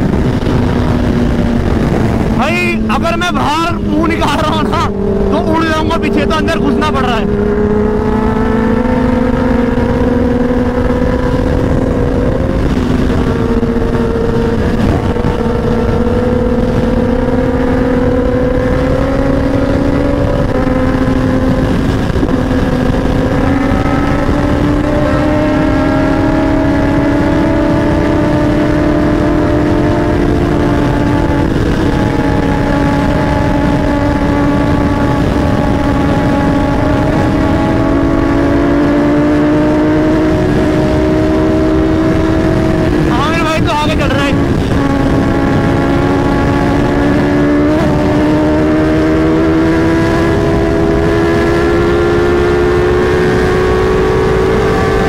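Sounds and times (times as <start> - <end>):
motorcycle engine accelerating: 0.0 - 55.0
wind noise on microphone: 0.0 - 55.0.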